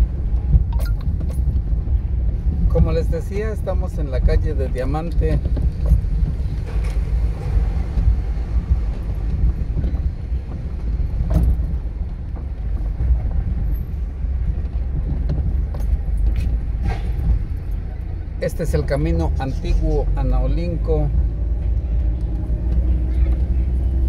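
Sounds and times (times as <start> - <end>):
low rumble of street noise: 0.0 - 24.0.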